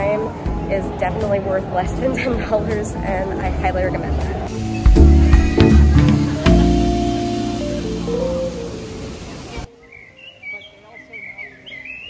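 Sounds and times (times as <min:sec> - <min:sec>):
music with held notes: 0:04.4 - 0:09.7
birds chirping: 0:04.5 - 0:12.0.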